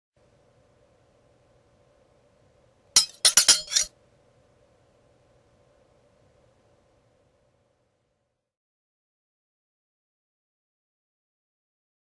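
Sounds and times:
glassy clinks ringing: 3.0 - 3.9.

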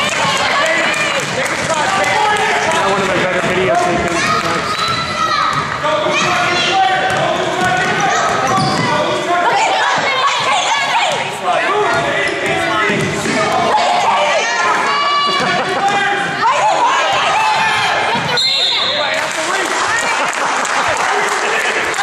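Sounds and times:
voices echoing in gym: 0.0 - 22.0.

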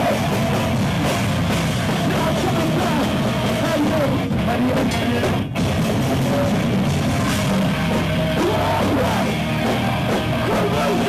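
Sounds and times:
band playing heavy rock live: 0.0 - 11.0.

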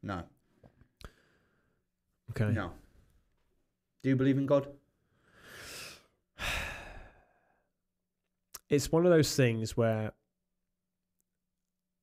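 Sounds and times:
man breathing heavily: 5.1 - 7.6
man sighing: 6.4 - 7.6.

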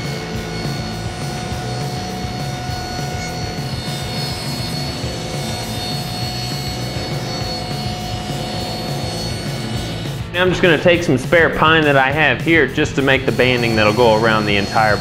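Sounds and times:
background music: 0.0 - 15.0
table saw cutting plywood: 0.0 - 15.0.

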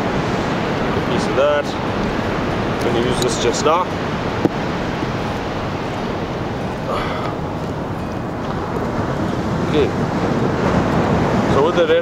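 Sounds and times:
ocean surf washing on beach: 0.0 - 12.0
wind on microphone: 0.0 - 12.0.

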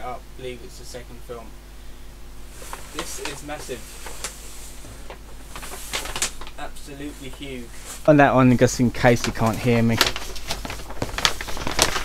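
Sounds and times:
steady low hum: 0.0 - 12.0
paper poster rustling and crackling: 2.5 - 12.0.

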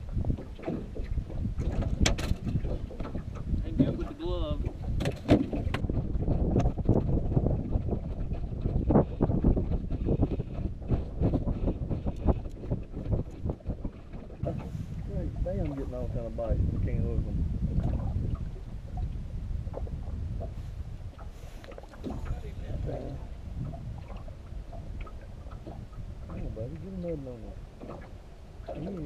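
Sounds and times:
knocks and clatter from boat: 0.0 - 29.0
wind buffeting microphone: 0.0 - 29.0.

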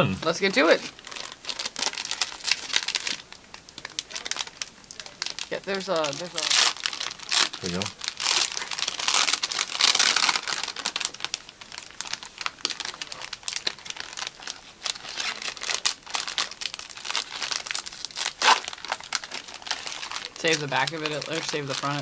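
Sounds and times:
foil wrappers crinkling: 0.3 - 22.0.

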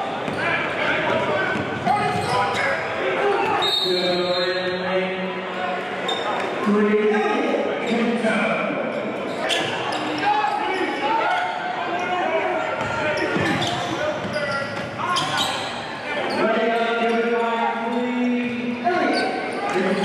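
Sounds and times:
people shouting and talking: 0.0 - 20.0.

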